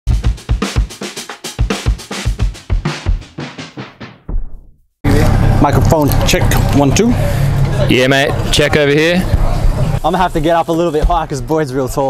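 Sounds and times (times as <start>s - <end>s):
fast drum-kit beat: 0.1s - 4.4s.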